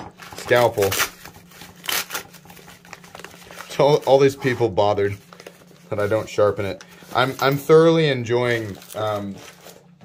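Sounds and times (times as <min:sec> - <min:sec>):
plastic packaging crinkling: 0:00.1 - 0:10.0.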